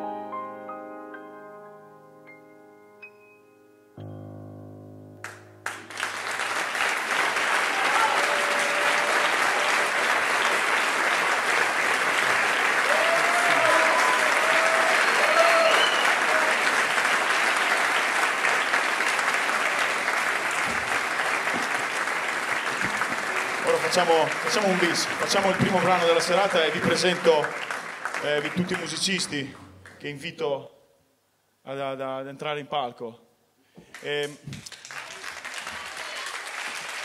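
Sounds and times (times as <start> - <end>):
sustained keyboard chord: 0.0 - 6.0
audience applause: 5.2 - 30.0, 33.9 - 37.0.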